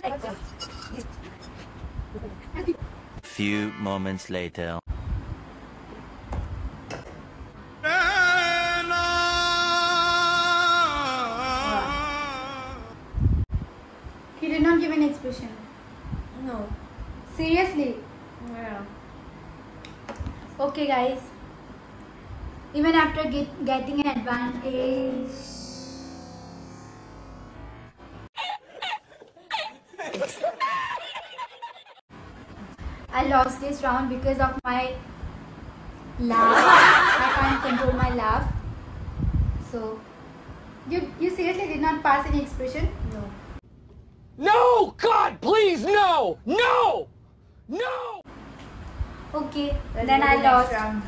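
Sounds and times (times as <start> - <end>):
background music: 3.2 - 4.3
woman laughing and giggling: 28.4 - 32.0, 36.4 - 38.1.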